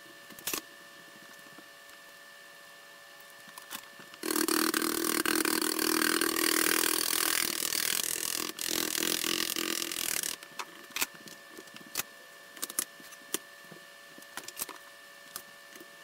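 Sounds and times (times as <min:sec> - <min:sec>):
caulking gun motor running: 0:04.2 - 0:10.5.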